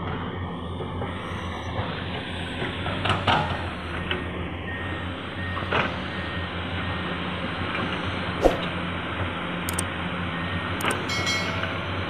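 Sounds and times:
faint back-up alarm beeping: 3.8 - 8.2.

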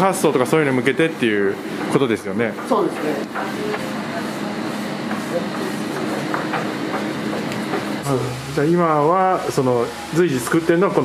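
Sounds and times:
faint murmuring voices: 2.6 - 8.6
room hiss: 8.0 - 11.0.

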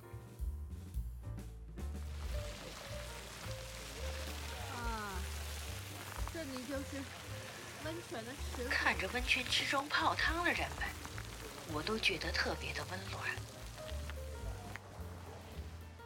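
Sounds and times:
music: 0.0 - 16.0
flowing water hissing: 2.0 - 16.0.

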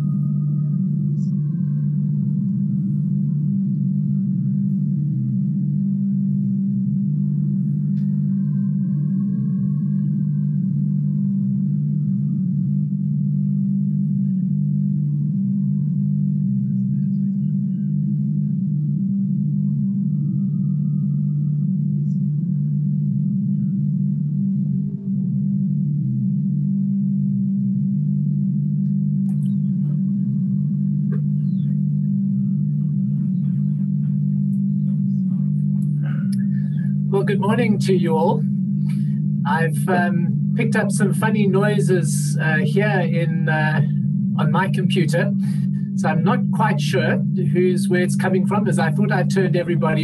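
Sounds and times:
low drone of held tones: 0.0 - 50.0
faint higher shifting tones: 29.2 - 50.0.

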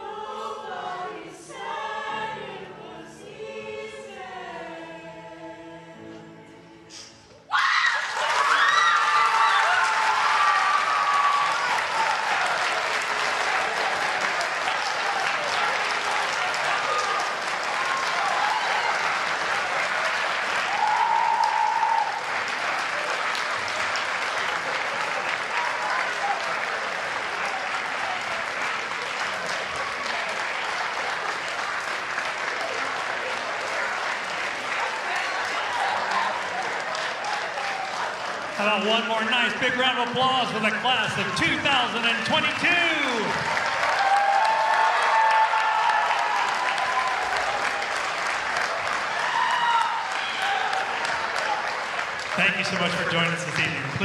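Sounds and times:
shouts and whoops: 7.5 - 12.6, 16.7 - 19.2, 20.7 - 22.2, 43.0 - 47.8, 49.1 - 51.6
audience applauding: 7.5 - 54.0.

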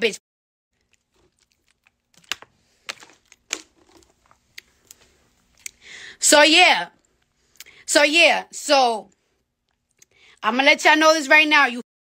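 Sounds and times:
plastic bottle crackling: 0.8 - 5.0.

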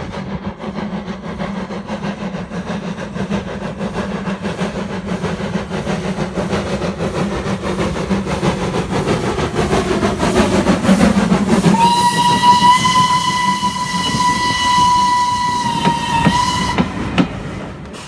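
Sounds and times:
steam locomotive working: 0.0 - 18.0
steam whistle long blast: 11.7 - 17.0.

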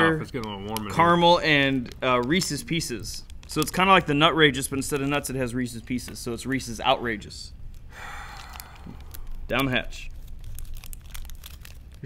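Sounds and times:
plastic wrapper tearing and crinkling: 0.2 - 6.8, 7.6 - 12.0.

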